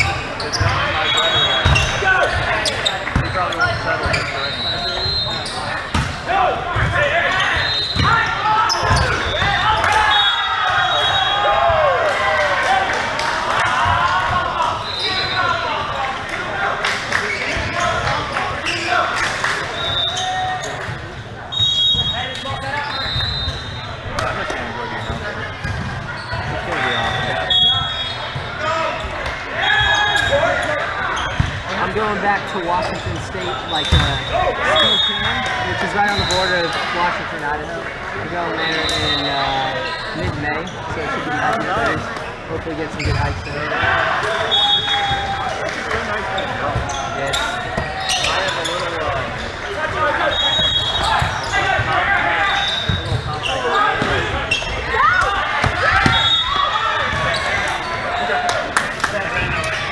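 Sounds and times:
sneakers squeaking on court: 0.0s - 6.2s, 6.8s - 9.5s, 21.6s - 37.9s, 38.5s - 43.8s, 46.2s - 58.4s
players calling out: 0.0s - 59.9s.

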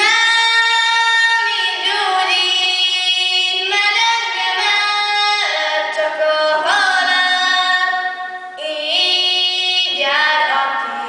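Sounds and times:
girl singing folk song unaccompanied: 0.0s - 11.0s.

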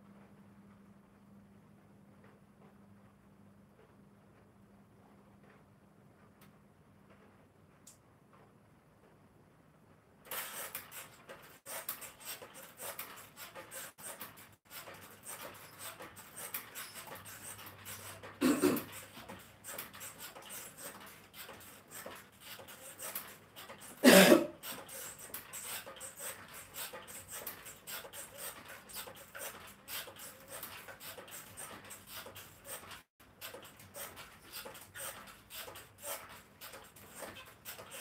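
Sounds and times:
stepper creaks and clicks: 10.3s - 24.0s, 24.6s - 38.0s.

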